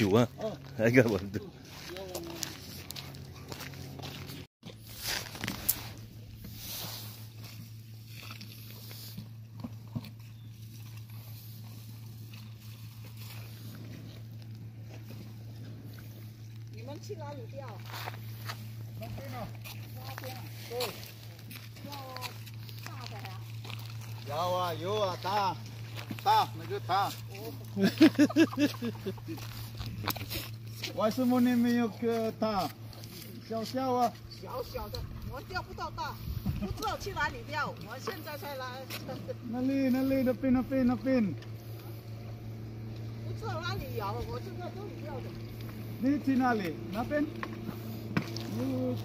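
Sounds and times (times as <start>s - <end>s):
voices: 0.0s - 3.8s, 15.0s - 49.0s
low motor hum: 0.0s - 49.0s.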